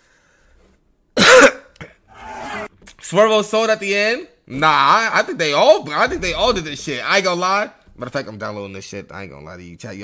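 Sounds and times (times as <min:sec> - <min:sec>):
short cough: 0:01.2 - 0:02.0.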